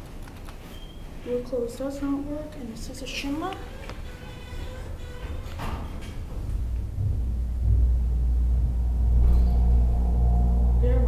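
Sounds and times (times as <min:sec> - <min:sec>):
elevator pump motor humming: 0:00.9 - 0:11.0.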